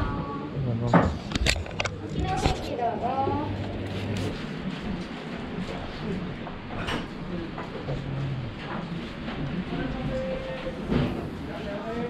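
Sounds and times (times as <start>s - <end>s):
restaurant background noise: 0.0s - 12.0s
woman talking: 2.0s - 3.7s.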